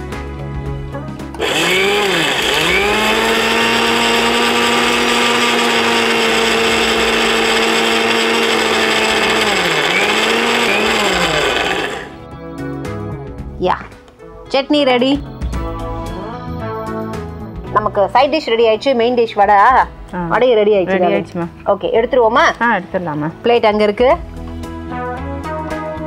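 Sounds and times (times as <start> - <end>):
mixer grinder running: 1.3 - 12.2.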